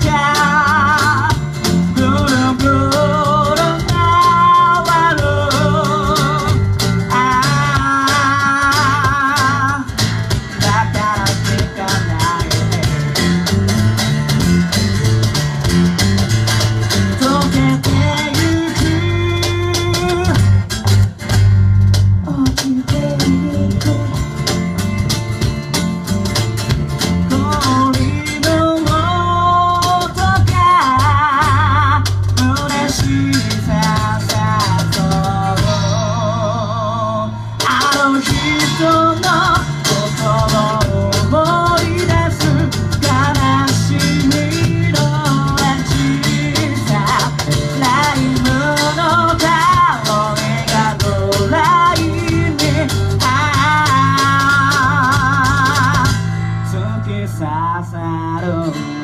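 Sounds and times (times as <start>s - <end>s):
man singing with vibrato: 0.0s - 14.2s, 17.1s - 20.7s, 22.2s - 24.5s, 27.2s - 59.0s
electric bass: 0.0s - 59.0s
strummed acoustic guitar: 0.0s - 59.0s.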